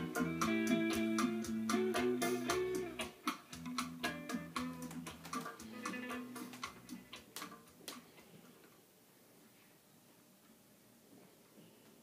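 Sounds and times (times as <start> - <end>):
acoustic guitar music: 0.0 - 7.7.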